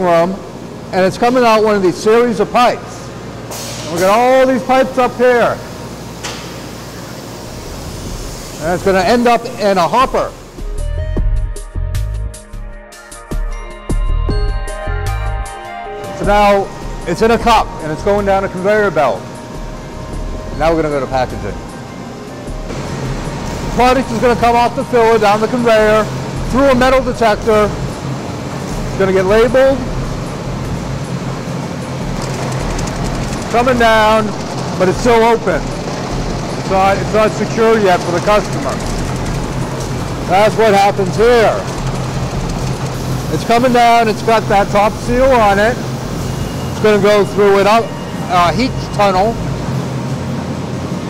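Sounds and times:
machinery and ventilation hum: 0:00.0 - 0:11.3, 0:15.5 - 0:51.0.

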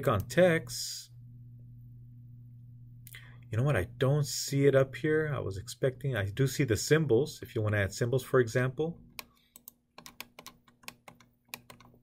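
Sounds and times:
computer keys and mouse clicking: 0:09.1 - 0:12.0.

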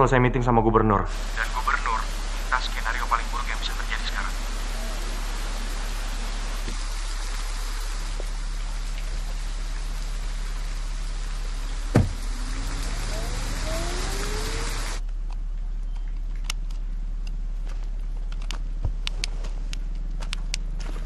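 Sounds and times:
heavy rain pouring: 0:01.1 - 0:15.0
car engine pulling away: 0:04.5 - 0:15.0
sharp thump: 0:11.9 - 0:12.3.

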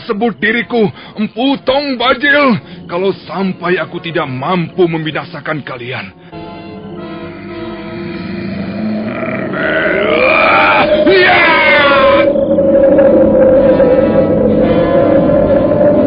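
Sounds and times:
droning music note: 0:06.2 - 0:16.0
man snorting and grunting: 0:07.3 - 0:11.3.

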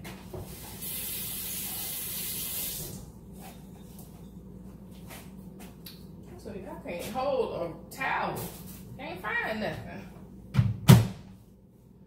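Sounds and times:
faucet running: 0:00.6 - 0:03.0.

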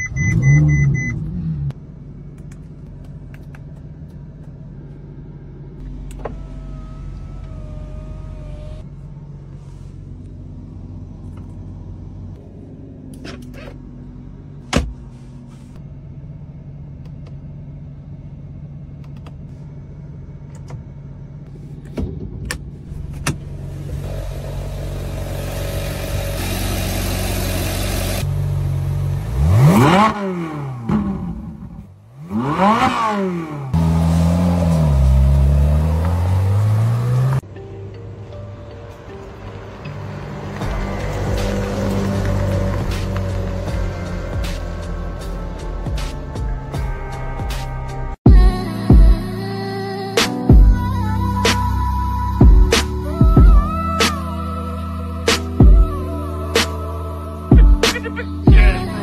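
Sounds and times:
car engine idling and revving: 0:00.0 - 0:59.0.

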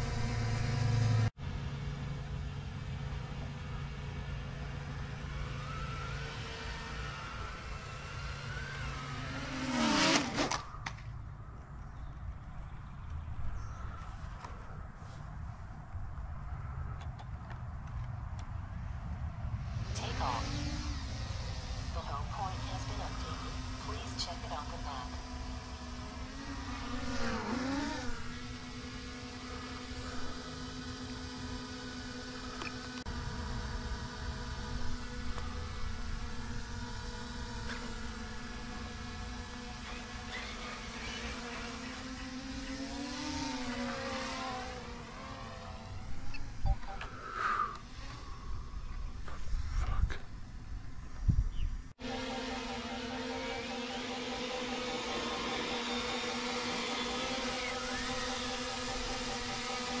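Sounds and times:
drone propeller buzz: 0:00.0 - 0:17.1, 0:18.6 - 1:00.0.

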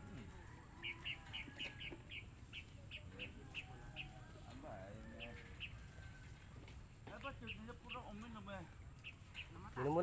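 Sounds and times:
small bird chirping: 0:00.8 - 0:06.5, 0:07.1 - 0:10.0.

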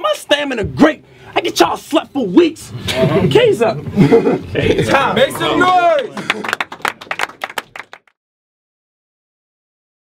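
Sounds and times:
crowd clapping: 0:04.9 - 0:08.2.

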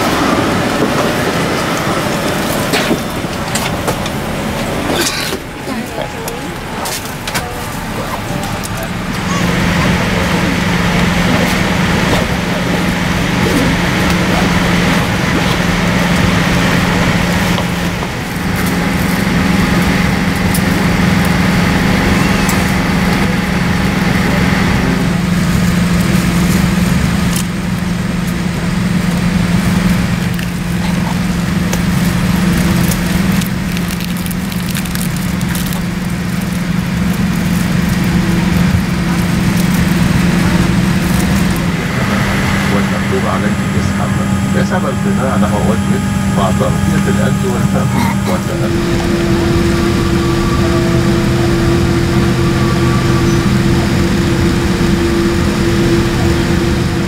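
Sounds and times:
cabin air system hum: 0:00.0 - 0:57.0.

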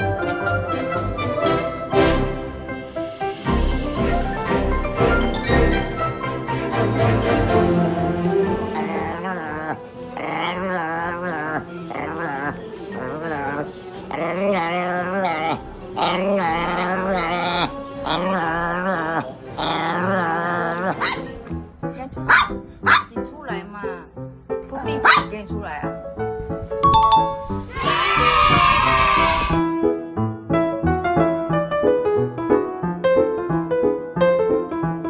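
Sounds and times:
background music: 0:00.0 - 0:35.0
dog grumbling: 0:08.4 - 0:21.5
dog barking: 0:20.9 - 0:21.4, 0:22.3 - 0:23.1, 0:25.0 - 0:25.4
chime sound effect: 0:26.8 - 0:27.6.

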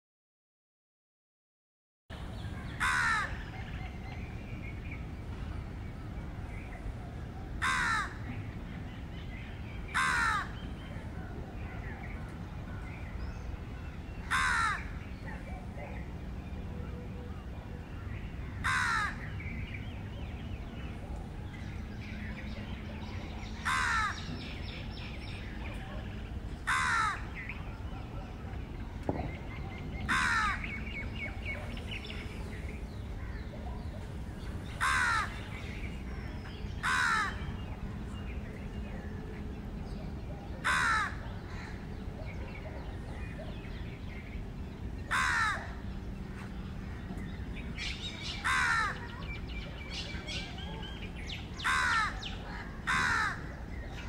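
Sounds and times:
bird cawing: 0:02.8 - 0:03.4, 0:07.6 - 0:08.2, 0:10.0 - 0:10.6, 0:14.3 - 0:15.0, 0:18.6 - 0:19.3, 0:23.6 - 0:24.3, 0:26.7 - 0:27.4, 0:30.1 - 0:30.8, 0:34.8 - 0:35.4, 0:36.8 - 0:37.4, 0:40.6 - 0:41.8, 0:45.1 - 0:45.8, 0:48.4 - 0:49.1, 0:51.6 - 0:53.5.

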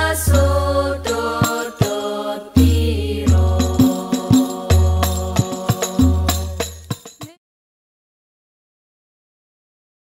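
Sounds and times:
frame drums: 0:00.0 - 0:07.4.

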